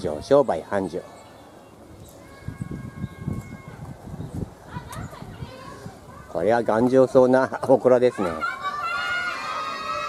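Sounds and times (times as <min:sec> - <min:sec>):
distant children calling out: 0:00.8 - 0:07.2, 0:07.9 - 0:10.0.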